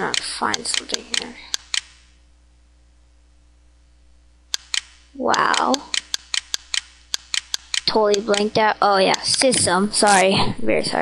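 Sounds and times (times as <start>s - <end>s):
computer mouse clicks: 0.0s - 2.0s, 4.5s - 9.7s
faint steady hum: 0.0s - 11.0s.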